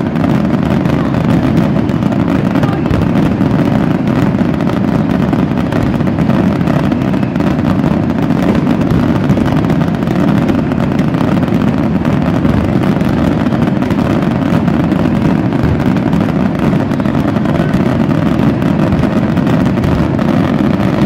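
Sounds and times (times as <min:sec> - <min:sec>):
fireworks bangs and crackles: 0:00.0 - 0:21.0.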